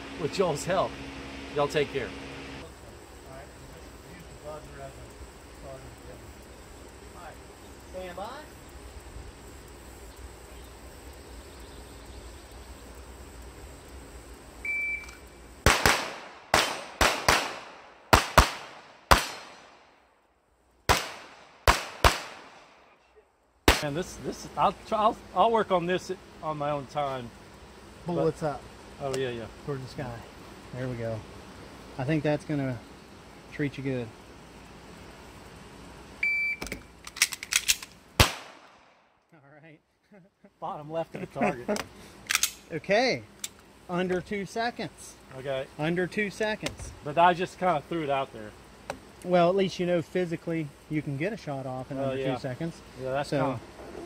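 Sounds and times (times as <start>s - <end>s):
pistol shots: 15.6s - 19.8s, 20.9s - 22.8s, 23.7s - 23.9s, 37.5s - 38.9s
shot timer beep: 36.2s - 36.6s
pistol clicks: 36.6s - 38.6s, 41.8s - 42.6s.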